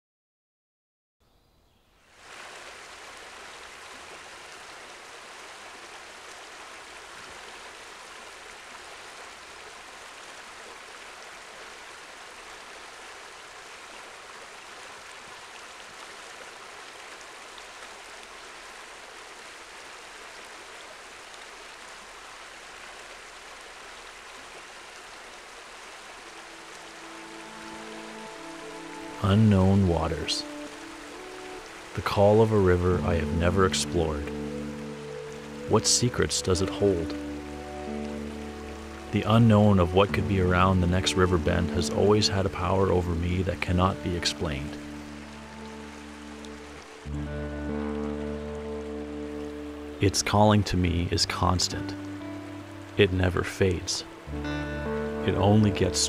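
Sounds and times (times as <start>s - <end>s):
river water rushing over rocks: 2.1s - 53.1s
soft music: 26.2s - 56.0s.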